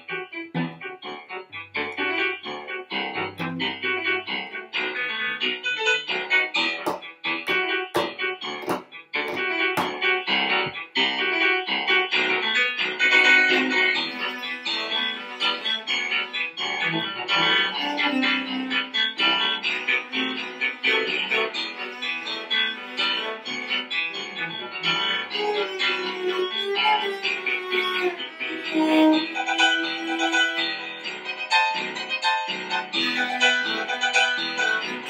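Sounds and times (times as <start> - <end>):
cello and piano tango: 0.0 - 35.0.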